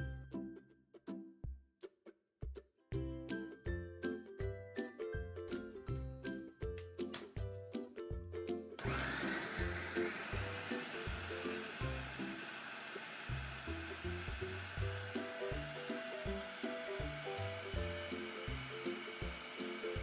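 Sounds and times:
food processor motor running: 8.8s - 20.0s.

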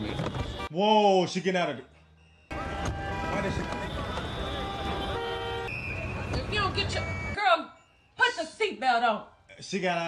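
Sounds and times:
car horns honking: 0.0s - 0.8s, 2.0s - 8.6s
city street traffic: 0.0s - 10.0s.

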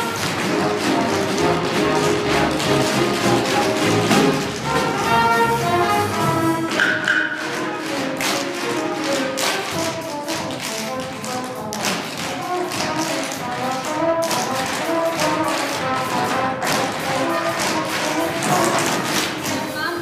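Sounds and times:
music playing: 0.0s - 20.0s
tap shoes clicking on stage: 0.0s - 20.0s.

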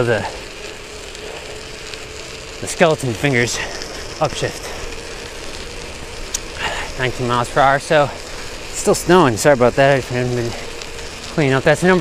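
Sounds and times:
bicycle tyres hissing on wet road: 0.0s - 12.0s.

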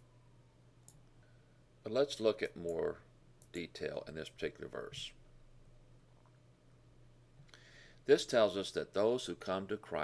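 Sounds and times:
low steady hum: 0.0s - 10.0s
man speaking: 1.8s - 5.2s, 8.0s - 10.0s.

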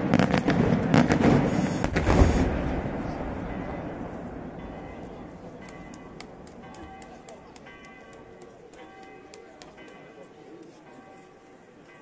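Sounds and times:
firework rumble: 0.0s - 8.3s.

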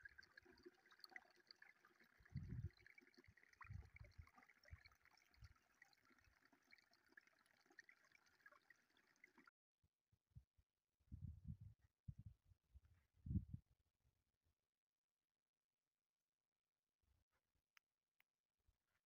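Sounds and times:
stream trickling over rocks: 0.0s - 9.5s.

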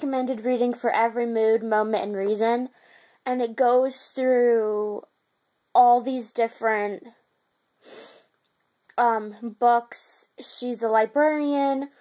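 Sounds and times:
woman's short breath in: 7.8s - 8.3s.

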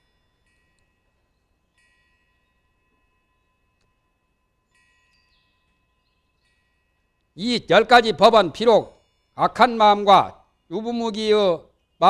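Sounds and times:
high ringing chime-like tones: 0.0s - 12.0s.

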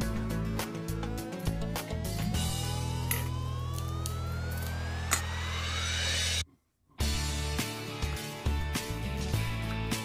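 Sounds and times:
rising pitch sweep: 0.8s - 6.4s.

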